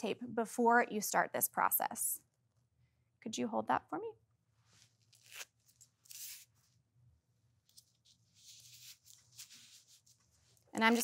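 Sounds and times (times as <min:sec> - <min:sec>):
paper tape tearing and rustling: 0:05.0 - 0:06.5, 0:10.8 - 0:11.0.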